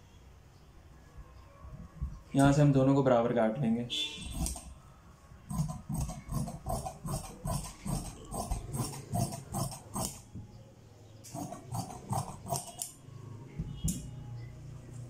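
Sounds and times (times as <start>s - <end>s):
shears snipping fabric: 4.3s - 4.7s, 5.5s - 10.3s, 11.3s - 13.0s.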